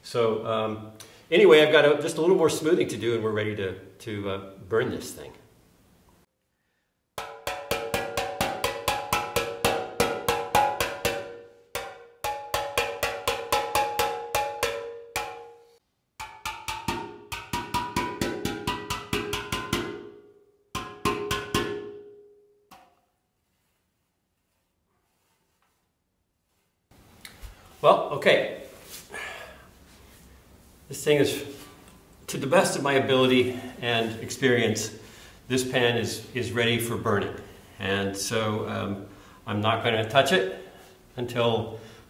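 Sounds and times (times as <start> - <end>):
hammer tapping steel pan: 7.2 - 23.1.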